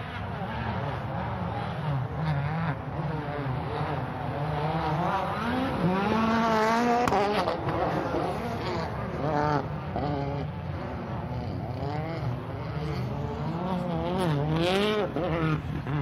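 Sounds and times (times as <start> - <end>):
rally car engine revving: 0.0 - 16.0.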